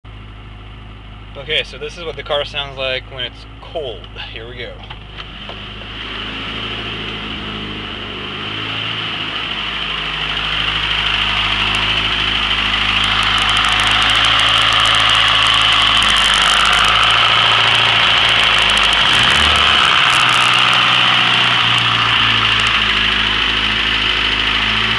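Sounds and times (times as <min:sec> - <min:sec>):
car engine idling: 0:00.0 - 0:24.9.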